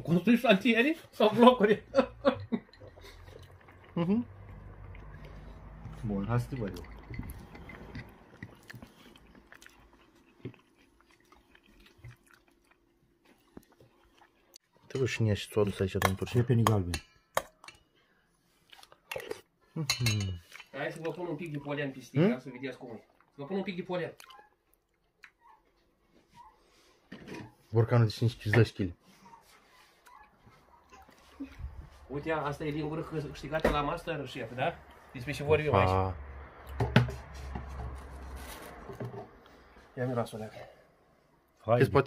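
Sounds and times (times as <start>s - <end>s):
metal spoon clinking against bowl: 6.3s - 8.1s, 16.0s - 17.8s, 19.8s - 20.7s.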